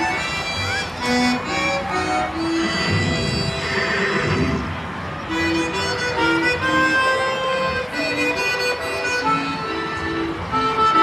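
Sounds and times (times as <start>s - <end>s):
horse whinny: 2.6s - 4.7s.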